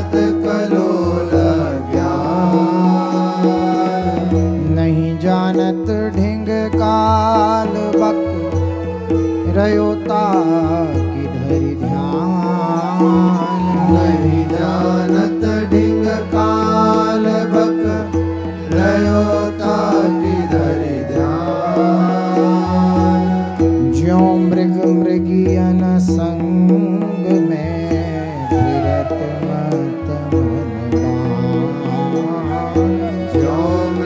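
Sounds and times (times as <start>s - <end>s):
harmonium drone: 0.0s - 26.3s
man singing devotional song: 0.0s - 34.0s.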